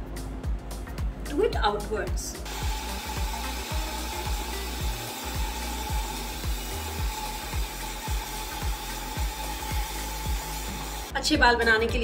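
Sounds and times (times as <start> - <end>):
music with thudding bass beat: 0.0 - 1.3, 2.0 - 12.0
hair dryer blowing with whine: 2.5 - 11.1.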